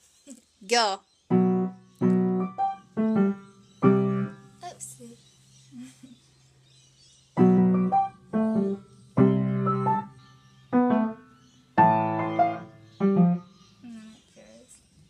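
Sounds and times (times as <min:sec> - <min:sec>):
piano chords and notes: 0:01.3 - 0:04.6, 0:07.4 - 0:13.7.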